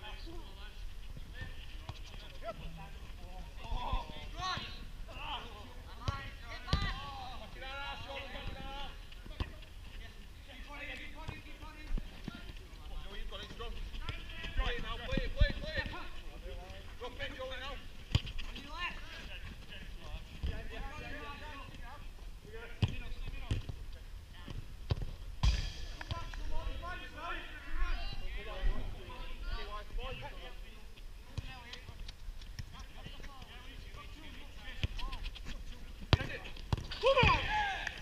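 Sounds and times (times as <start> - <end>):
ball kick thuds: 24.4 - 26.9, 36.0 - 37.5
players shouting: 36.9 - 38.0.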